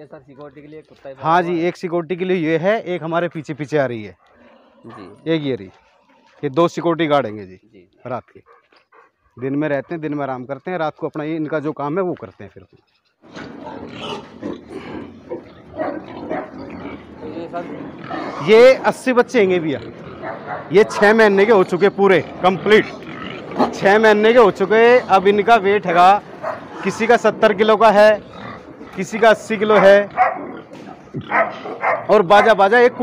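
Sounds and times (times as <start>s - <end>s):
pigs grunting: 4.1s - 6.9s, 13.2s - 33.0s
pigs moving about: 4.2s - 6.9s, 8.3s - 10.7s, 12.2s - 33.0s.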